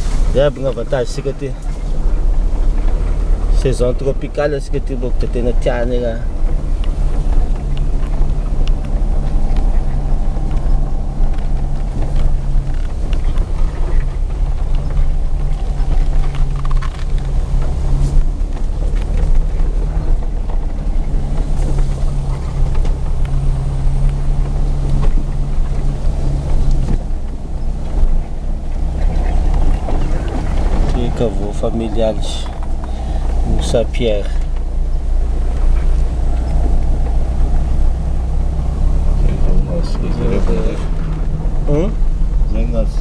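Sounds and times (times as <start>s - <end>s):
vehicle engine and road rumble: 0.0s - 43.0s.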